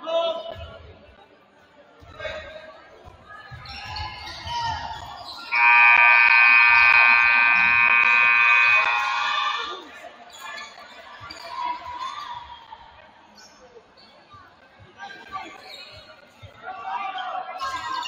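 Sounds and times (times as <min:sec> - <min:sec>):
crowd chatter: 0:00.0 - 0:18.0
scoreboard horn blast: 0:05.5 - 0:09.4.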